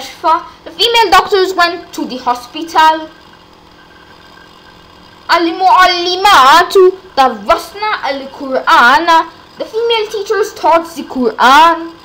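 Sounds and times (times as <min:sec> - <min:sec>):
recording hum and hiss: 0:00.0 - 0:12.0.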